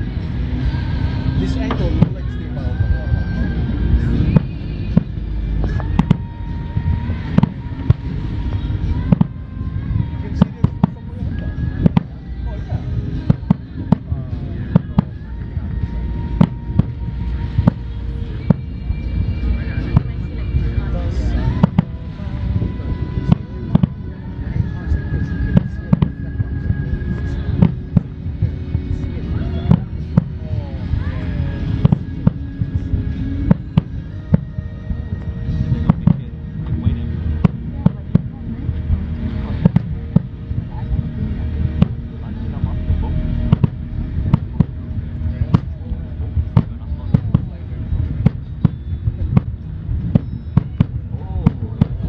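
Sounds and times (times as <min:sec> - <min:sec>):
crowd voices: 0:00.0 - 0:52.0
low rumble: 0:00.0 - 0:52.0.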